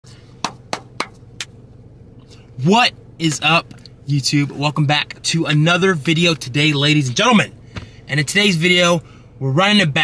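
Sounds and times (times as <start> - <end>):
steady low hum: 0.0 - 10.0
sharp hand claps: 0.4 - 1.6.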